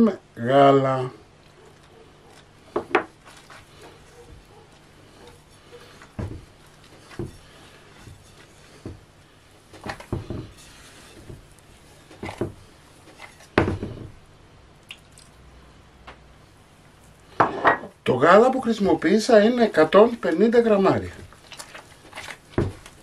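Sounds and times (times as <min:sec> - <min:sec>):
dough squishing: 0:01.3 - 0:15.5, 0:18.4 - 0:23.0.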